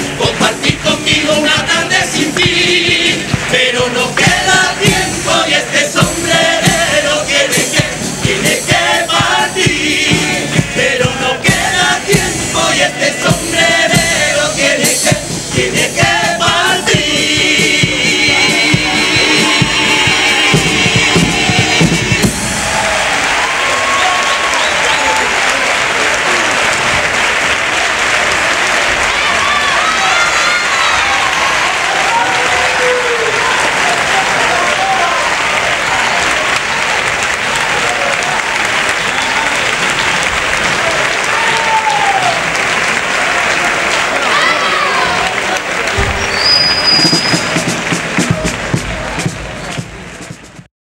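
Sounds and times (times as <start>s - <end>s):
audience applauding and cheering: 0.0s - 50.7s
people shouting: 28.8s - 36.4s, 40.7s - 42.5s, 44.1s - 47.6s
short high whistle: 46.0s - 47.6s.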